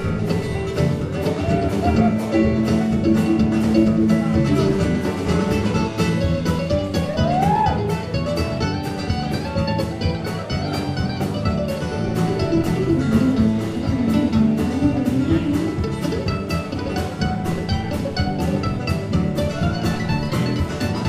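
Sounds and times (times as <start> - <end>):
acoustic guitar: 0.0 - 21.0
drum kit beat: 0.0 - 21.0
mandolin picking: 0.0 - 21.0.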